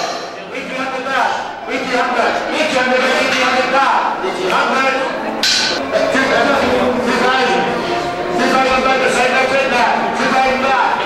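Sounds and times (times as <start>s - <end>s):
auctioneer chanting over loudspeaker: 0.0s - 11.0s.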